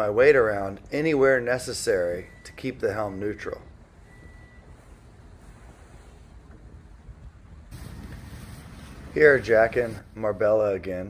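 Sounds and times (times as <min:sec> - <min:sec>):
faint wind: 0:00.0 - 0:11.0
sea noise: 0:07.7 - 0:10.2.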